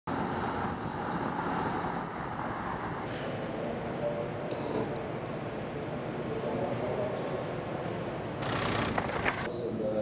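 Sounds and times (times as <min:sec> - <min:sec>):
outdoor rumble and hiss: 0:00.1 - 0:10.0.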